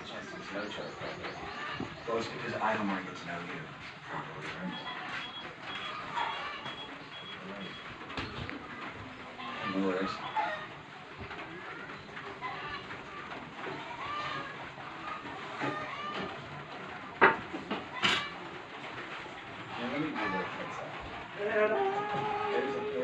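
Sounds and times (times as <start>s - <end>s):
indistinct voices: 17.8s - 23.0s.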